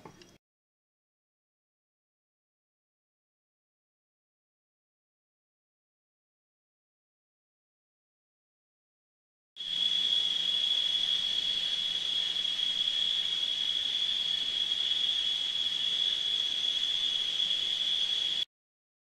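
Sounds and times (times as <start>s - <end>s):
faint hiss: 9.6s - 18.4s
shrill insect chorus: 9.6s - 18.5s.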